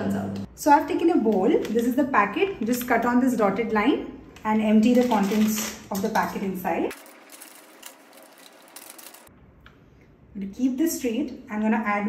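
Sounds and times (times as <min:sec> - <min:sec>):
plastic pouch rustling: 0:04.8 - 0:06.0, 0:06.9 - 0:09.3.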